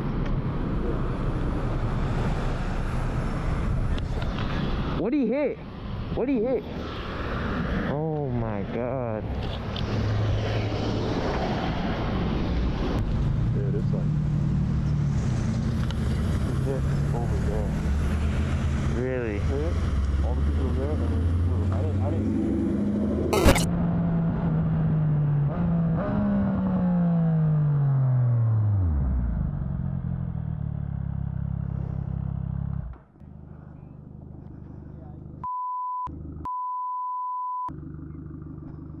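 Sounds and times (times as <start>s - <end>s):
motorcycle engine slowing: 28.9s - 35.4s, 37.7s - 39.0s
high censor bleep: 35.4s - 37.7s.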